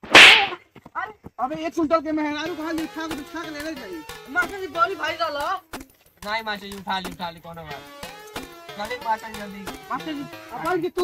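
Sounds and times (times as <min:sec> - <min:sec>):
loud swish sound effect: 0:00.0 - 0:00.6.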